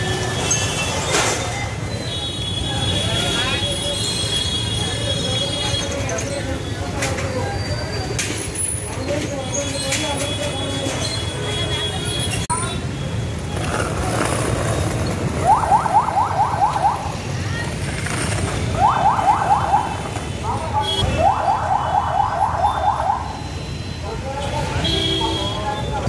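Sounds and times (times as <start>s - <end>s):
crowd noise: 0.0s - 26.0s
street traffic: 0.0s - 26.0s.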